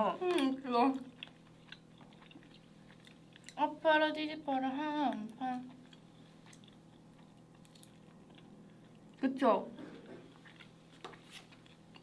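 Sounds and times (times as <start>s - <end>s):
person chewing: 0.2s - 3.6s, 5.6s - 9.2s, 10.0s - 12.0s.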